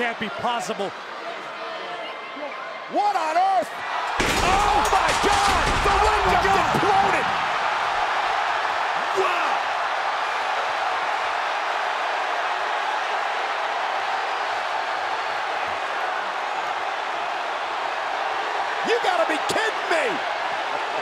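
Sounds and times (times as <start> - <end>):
arena crowd cheering: 0.0 - 21.0.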